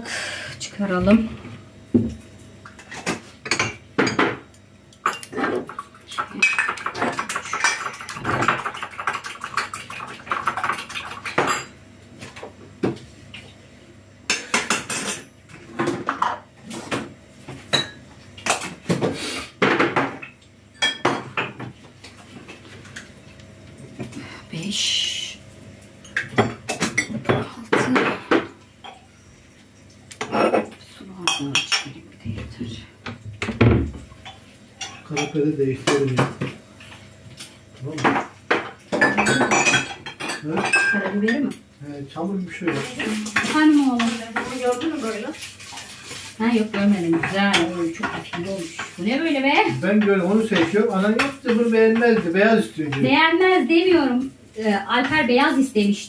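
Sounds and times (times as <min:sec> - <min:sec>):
dishes and glasses clinking: 0:19.6 - 0:21.6, 0:38.0 - 0:41.5.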